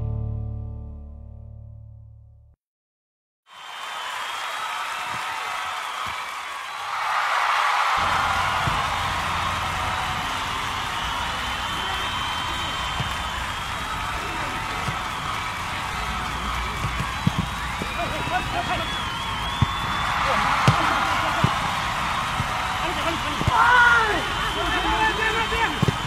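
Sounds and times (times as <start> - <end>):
music: 0.0 - 2.6
crowd voices and cheering: 3.5 - 26.0.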